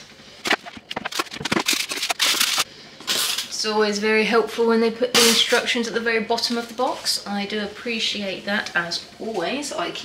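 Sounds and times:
packaging being handled: 0:00.5 - 0:02.6.

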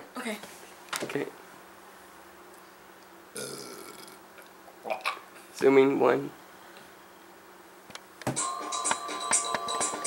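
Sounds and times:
person burping: 0:03.4 - 0:04.2, 0:04.8 - 0:05.2.

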